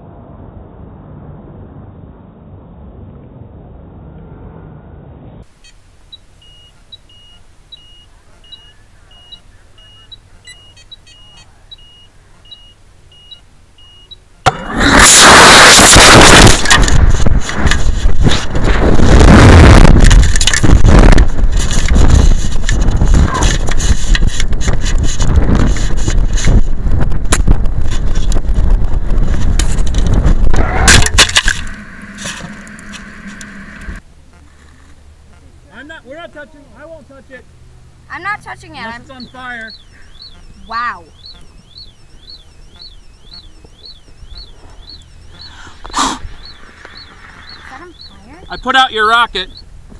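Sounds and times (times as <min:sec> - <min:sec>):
short electronic beep: 0:05.6 - 0:14.2, 0:39.0 - 0:49.6.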